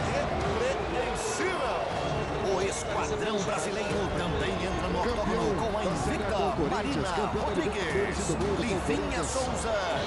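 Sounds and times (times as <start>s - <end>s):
men talking over one another: 2.8s - 10.0s.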